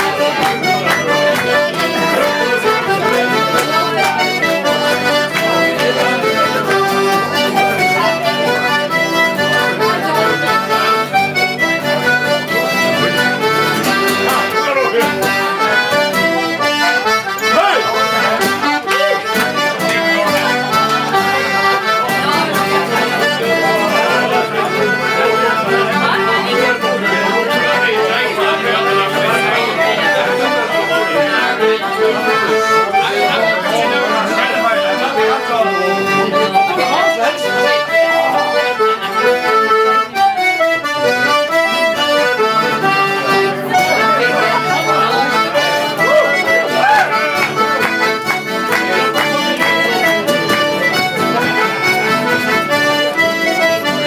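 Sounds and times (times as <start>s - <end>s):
accordion playing a tune: 0.0s - 54.0s
people talking: 0.0s - 54.0s.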